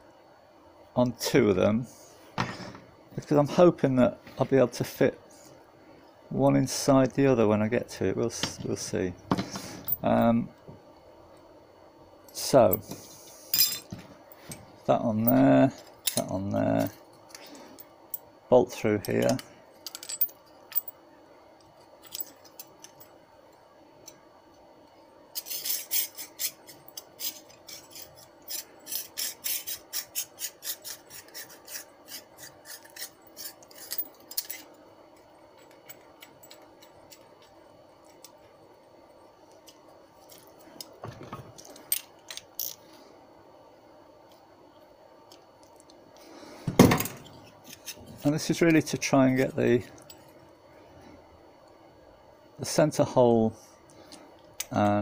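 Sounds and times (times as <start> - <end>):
metal parts clicking and scraping: 15.2 - 17.9, 19.0 - 20.9, 21.7 - 23.1, 25.3 - 38.4, 39.6 - 43.0, 46.9 - 50.3.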